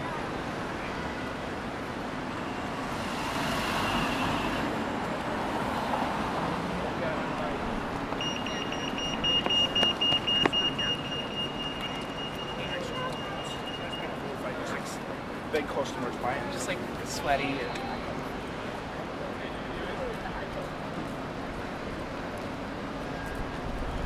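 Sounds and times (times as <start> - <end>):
city street traffic: 0.0 - 24.0
pedestrian crossing beeper: 2.3 - 4.8, 7.0 - 15.0.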